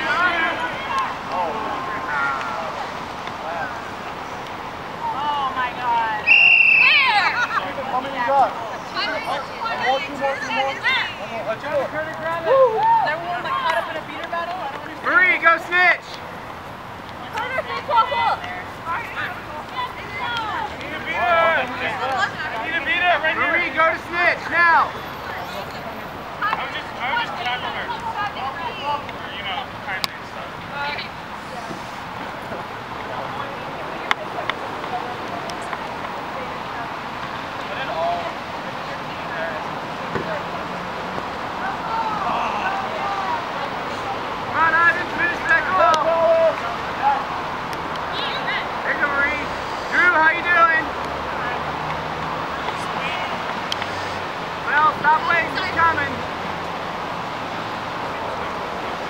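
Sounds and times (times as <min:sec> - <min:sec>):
distant voices of players: 0:00.0 - 0:59.0
people calling and shouting: 0:00.0 - 0:59.0
traffic noise: 0:00.0 - 0:59.0.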